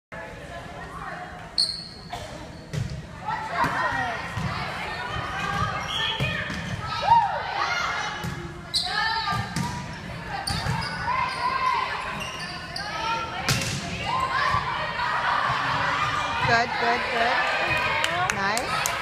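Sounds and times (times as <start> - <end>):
shoe squeaks on wooden court: 1.6 - 2.9, 8.7 - 9.1, 10.4 - 13.1
volleyball strikes: 13.4 - 14.6.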